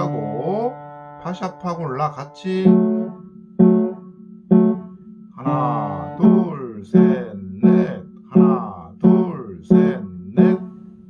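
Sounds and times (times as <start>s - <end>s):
piano chord strikes: 0.0s - 11.0s.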